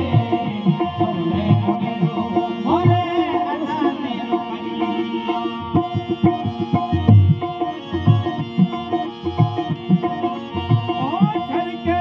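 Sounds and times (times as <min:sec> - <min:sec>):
man singing: 0:00.0 - 0:07.6, 0:10.6 - 0:12.0
harmonium chords: 0:00.0 - 0:12.0.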